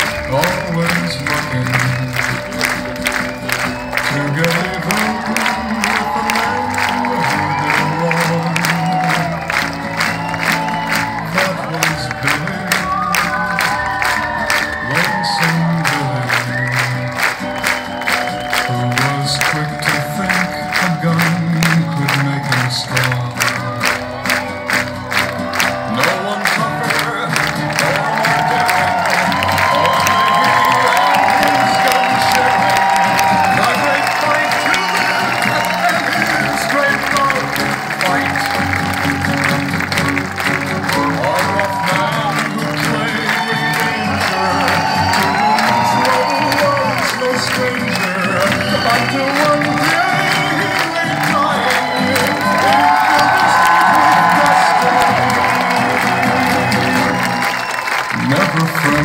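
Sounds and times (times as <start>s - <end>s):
crowd cheering: 0.0s - 59.0s.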